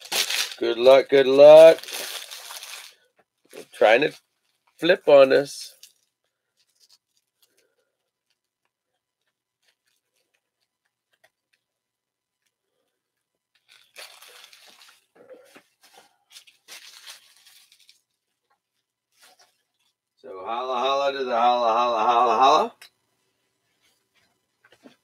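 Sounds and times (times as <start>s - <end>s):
foil wrapper crinkling and tearing: 0.0s - 11.6s, 13.5s - 19.9s.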